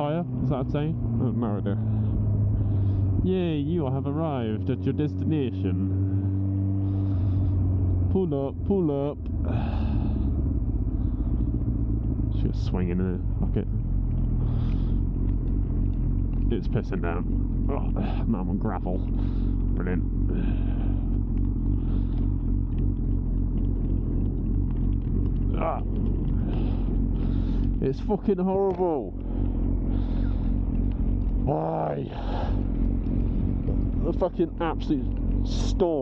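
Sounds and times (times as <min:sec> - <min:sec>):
motorcycle engine running: 0:00.0 - 0:36.0
road noise: 0:00.0 - 0:36.0.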